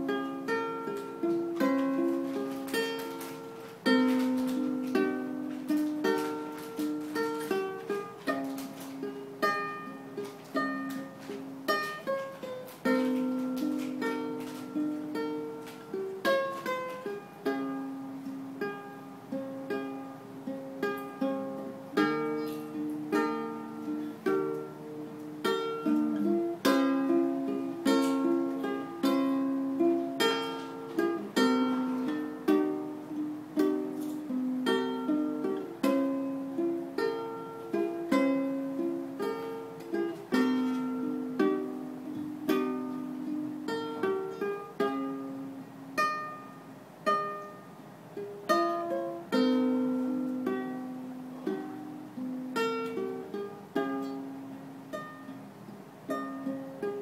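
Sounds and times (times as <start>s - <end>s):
fingerpicked ukulele: 0.0s - 57.0s.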